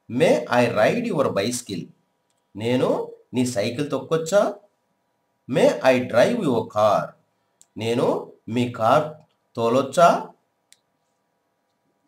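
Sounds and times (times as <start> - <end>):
person speaking: 0.0 - 4.7, 5.4 - 10.4.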